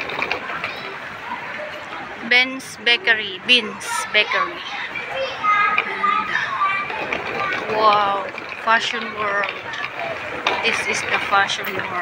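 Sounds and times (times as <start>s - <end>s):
children chattering and calling out: 0.0s - 12.0s
people talking: 0.0s - 12.0s.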